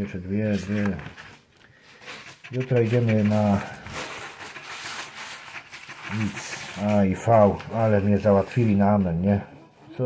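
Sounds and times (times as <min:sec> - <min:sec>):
coin scratching a scratch card: 0:02.2 - 0:08.9.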